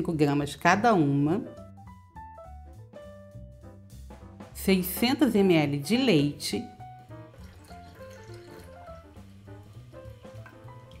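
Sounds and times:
soft background music: 0.0 - 11.0
milk pouring into blender jar: 7.2 - 11.0.

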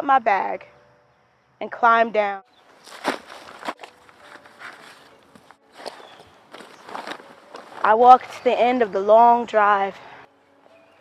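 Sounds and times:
cloth sack rustling: 2.7 - 8.3.

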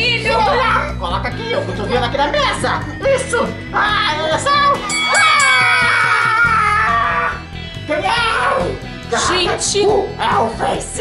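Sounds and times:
background music: 0.0 - 11.0
long falling shout: 5.1 - 7.4.

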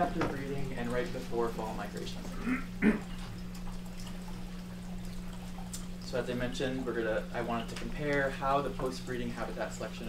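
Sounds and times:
steady low hum: 0.0 - 10.0
person coughing: 2.4 - 3.2.

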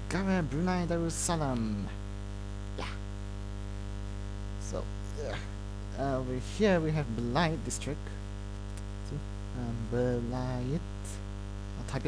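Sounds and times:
electrical mains hum: 0.0 - 12.0
person saying a word: 2.8 - 3.0, 5.1 - 5.6.

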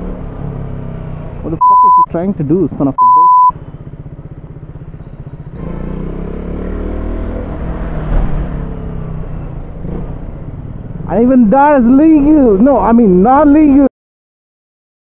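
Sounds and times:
censor bleep: 1.6 - 2.1, 3.0 - 3.6
motorcycle engine pulsing: 3.0 - 11.2.

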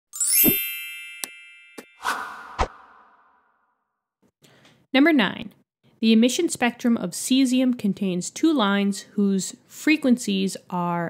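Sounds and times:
bright ringing chime: 0.2 - 2.0.

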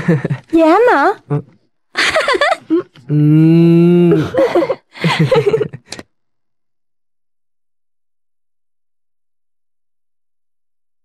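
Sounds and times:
long drawn-out vocal sound: 3.1 - 4.4.

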